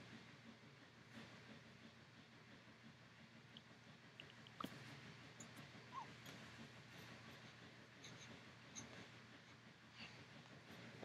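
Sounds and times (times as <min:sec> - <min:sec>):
baby cooing: 0:05.9 - 0:06.1.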